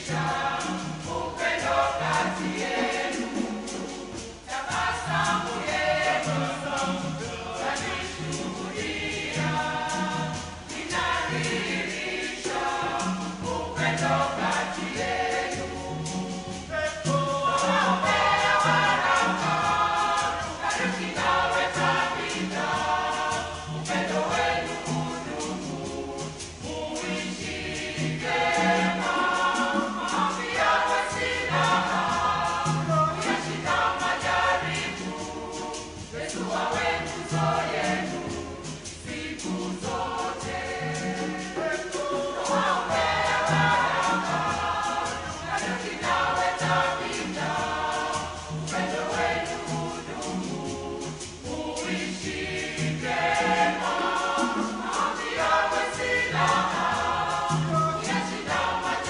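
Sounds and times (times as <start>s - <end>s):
church choir singing: 0.0s - 59.0s.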